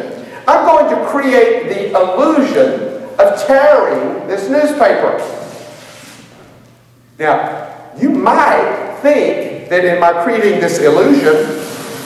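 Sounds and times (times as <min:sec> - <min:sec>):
newspaper tearing: 0:05.2 - 0:06.3.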